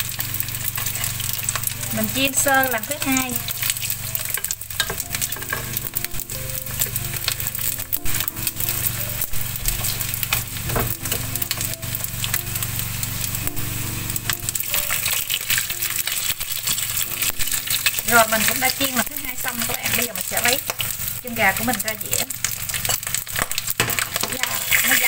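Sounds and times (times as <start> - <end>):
chopsticks stirring in wok: 0.0 - 25.0
frying in hot oil sizzle: 0.0 - 25.0.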